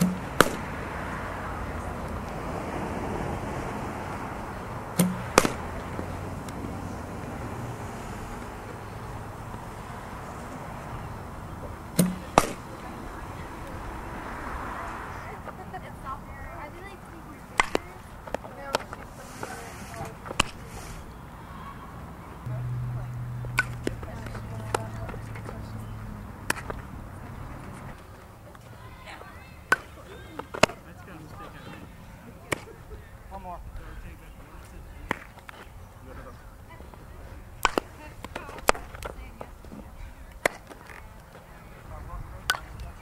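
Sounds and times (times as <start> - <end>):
bat cracking a ball: 0.0 - 0.8, 4.9 - 6.6, 11.9 - 12.7, 17.6 - 18.9, 20.3 - 20.6, 23.4 - 25.2, 26.4 - 26.8, 29.7 - 30.9, 37.6 - 39.1.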